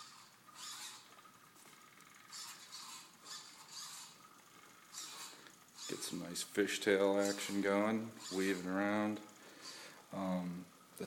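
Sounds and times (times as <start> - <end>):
small robot motor whirring: 0.0 - 6.2, 7.1 - 9.8.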